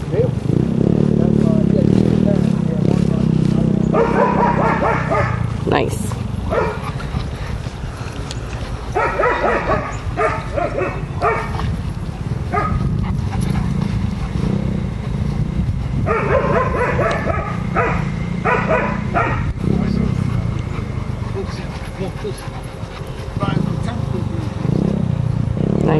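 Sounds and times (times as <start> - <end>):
steady low rumble: 0.0 - 25.9
people talking: 1.1 - 4.1, 5.6 - 6.2, 19.6 - 22.5, 23.4 - 24.9
dog barking: 3.9 - 5.5, 6.5 - 6.9, 8.9 - 11.6, 12.5 - 12.9, 16.0 - 19.6.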